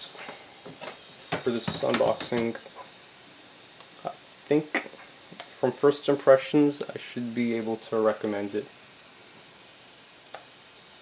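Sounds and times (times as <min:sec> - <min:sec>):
room hiss: 0:00.0 - 0:11.0.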